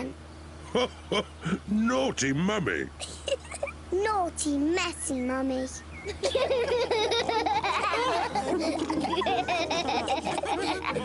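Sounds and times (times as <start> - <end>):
cartoon voices laughing: 0.6 - 1.7, 3.0 - 3.8, 6.1 - 11.0.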